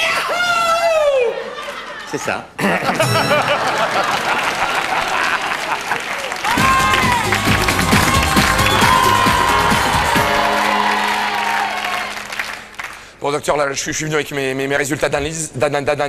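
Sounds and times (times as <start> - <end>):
studio audience applauding: 3.4 - 13.2
music with pulsing bass beat: 6.6 - 10.4.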